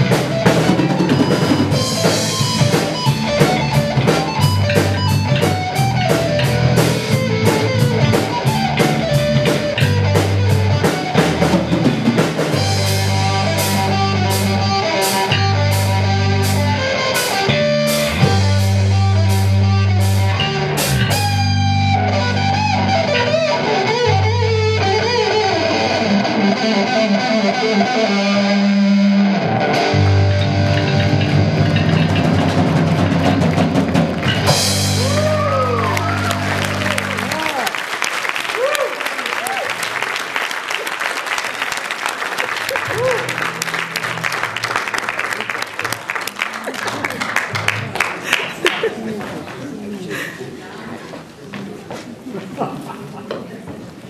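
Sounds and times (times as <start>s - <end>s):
live rock band playing: 0.0s - 49.0s
audience applauding: 33.2s - 50.6s.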